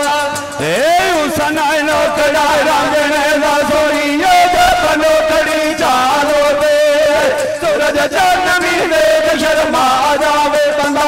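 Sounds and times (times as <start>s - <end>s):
man singing through a microphone: 0.0s - 11.0s.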